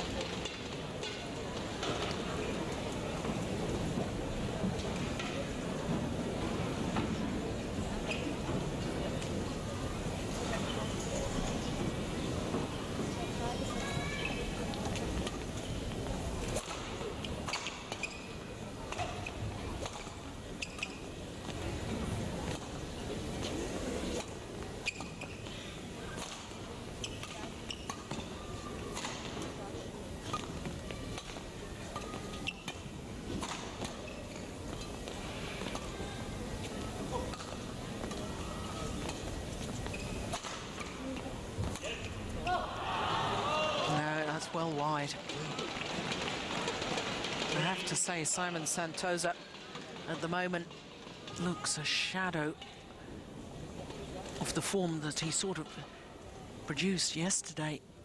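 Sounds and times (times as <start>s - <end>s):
murmur of crowd voices: 0.0s - 58.0s.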